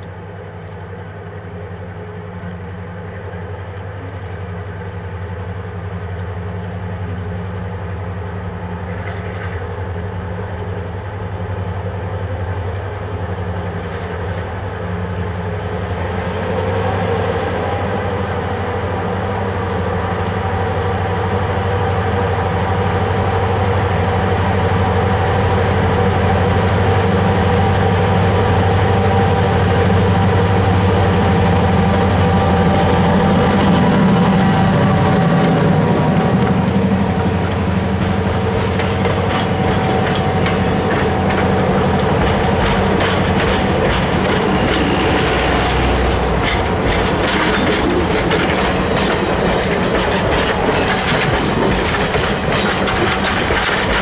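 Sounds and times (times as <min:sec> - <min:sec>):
diesel locomotive engine running: 0:00.0 - 0:54.0
train wheels clicking over rail joints: 0:25.9 - 0:54.0.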